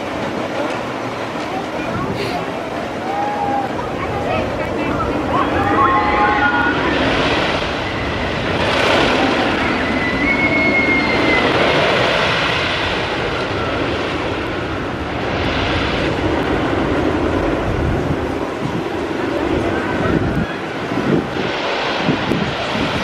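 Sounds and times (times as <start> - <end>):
roller coaster rumbling on wooden track: 0.0 - 23.0.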